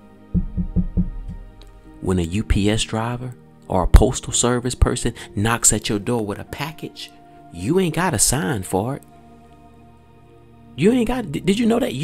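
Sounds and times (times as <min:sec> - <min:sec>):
faint background music: 0:00.0 - 0:12.0
fist knocking on desk: 0:00.4 - 0:01.6.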